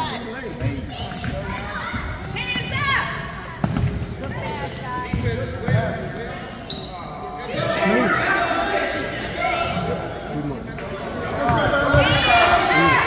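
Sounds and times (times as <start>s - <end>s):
people shouting in a gym: 0.9s - 5.6s, 7.1s - 10.2s, 10.9s - 13.0s.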